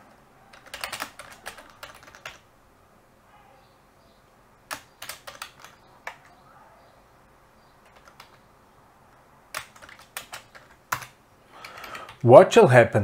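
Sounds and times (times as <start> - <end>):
computer keyboard typing: 0.5 - 2.4, 4.7 - 6.4, 7.8 - 8.4, 9.5 - 12.3.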